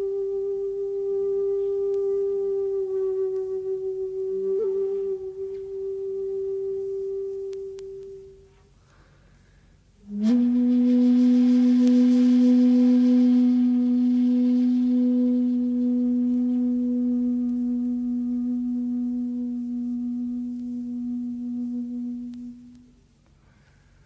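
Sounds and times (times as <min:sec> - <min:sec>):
flute playing long low note: 0:00.0 - 0:09.3, 0:09.9 - 0:23.7.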